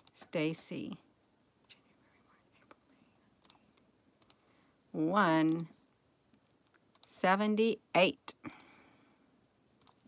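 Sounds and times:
faint computer mouse clicks: 3.4 - 4.4, 6.4 - 7.2, 9.8 - 10.0.

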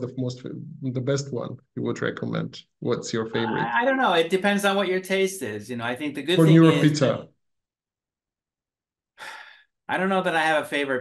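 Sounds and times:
man speaking: 0.0 - 4.4, 6.2 - 7.4.

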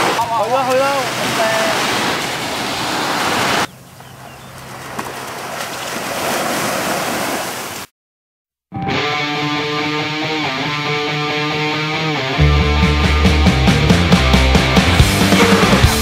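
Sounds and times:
waves washing on beach: 0.0 - 3.7, 4.5 - 7.9
guitar music: 8.7 - 16.0.

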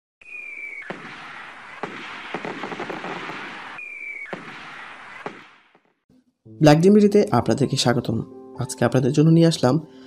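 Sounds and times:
firework rocket whistle: 0.2 - 5.6
firework crackling: 0.2 - 5.9
firework bangs: 0.2 - 6.1.

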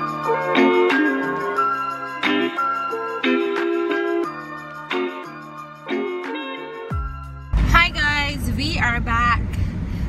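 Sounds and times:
car cabin rumble: 7.5 - 10.0.

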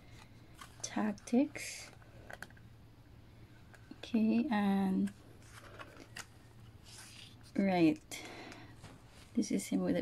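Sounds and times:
photobook page turning: 5.0 - 7.6.

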